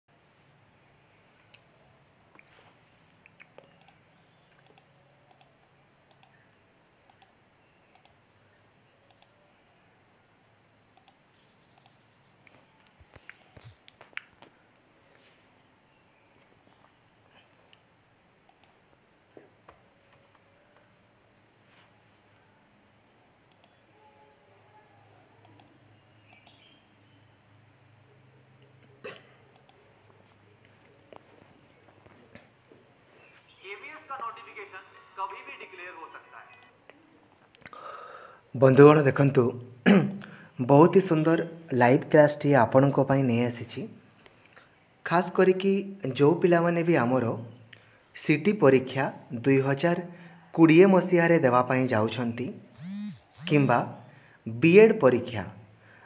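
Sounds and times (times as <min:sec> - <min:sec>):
faint clicks: 0:03.2 - 0:05.5, 0:06.1 - 0:08.2, 0:09.1 - 0:09.3, 0:11.0 - 0:14.5, 0:18.5 - 0:18.8, 0:23.5 - 0:23.8, 0:25.4 - 0:26.6, 0:29.5 - 0:29.8
faint sharp clicks: 0:26.3 - 0:26.6.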